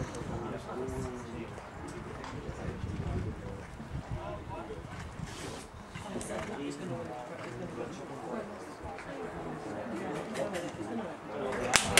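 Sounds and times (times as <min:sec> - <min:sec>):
wind buffeting microphone: 0:00.0 - 0:08.0
faint voices: 0:00.0 - 0:11.9.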